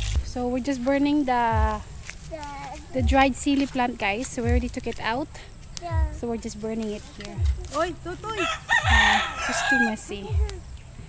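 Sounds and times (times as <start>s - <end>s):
rooster crowing: 8.3s - 10.4s.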